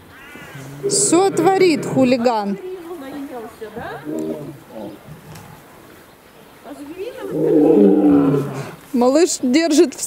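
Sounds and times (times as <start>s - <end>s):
lion growling: 0.6s - 2.4s, 3.9s - 5.7s, 7.2s - 8.8s.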